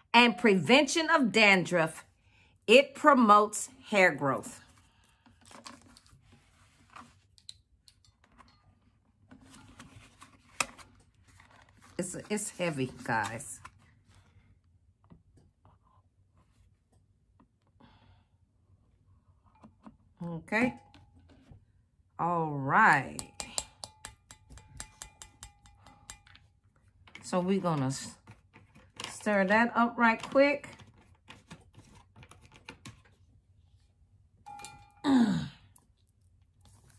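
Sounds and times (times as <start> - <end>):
plastic jug and spoon handling: 5.1 - 13.8
spoon tapping glass cup: 23.2 - 26.4, 34.5 - 35.0.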